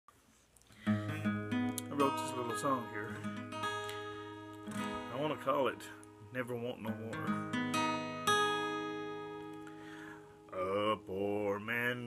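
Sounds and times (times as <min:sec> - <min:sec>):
acoustic guitar strumming: 0:00.8 - 0:12.0.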